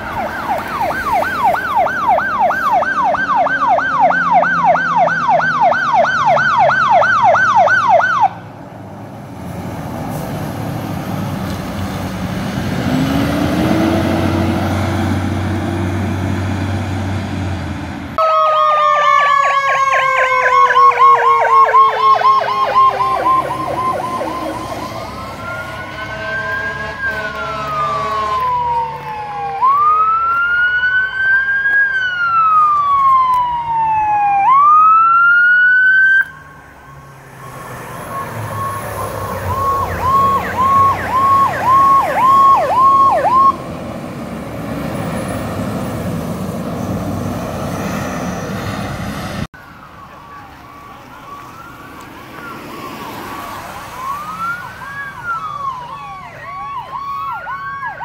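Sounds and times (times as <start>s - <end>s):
heavy truck engines running: 0.0s - 35.2s, 36.3s - 58.0s
fire truck siren yelp and wail: 0.0s - 58.0s.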